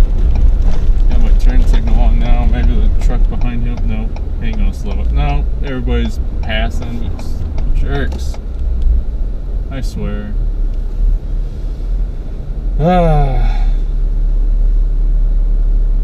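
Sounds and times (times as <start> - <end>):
pickup engine and tyres rumbling: 0.0 - 16.0.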